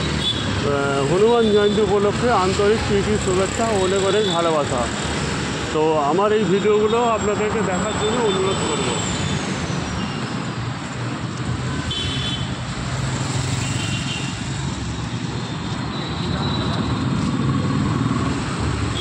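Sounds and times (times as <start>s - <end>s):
car and scooter engines: 0.0s - 19.0s
tyres on road: 0.0s - 19.0s.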